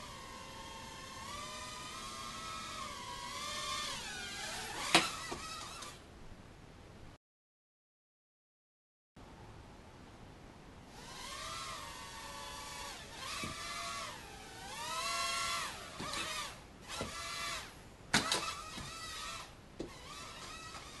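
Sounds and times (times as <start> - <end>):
small electric motors whining: 0.0 - 6.0, 10.9 - 21.0.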